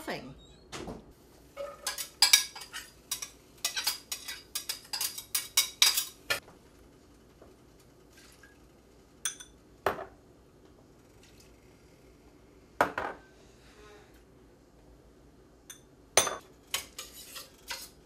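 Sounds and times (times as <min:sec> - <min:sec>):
utensils and dishes clattering: 0:01.6 - 0:06.4, 0:16.2 - 0:18.0.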